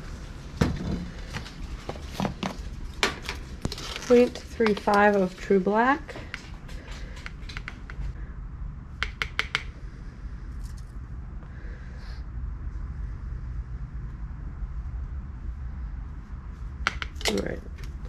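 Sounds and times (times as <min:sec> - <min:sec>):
plastic spoon tapping and scraping: 0:04.6 - 0:05.1, 0:06.2 - 0:08.1, 0:09.0 - 0:09.7, 0:16.8 - 0:17.6.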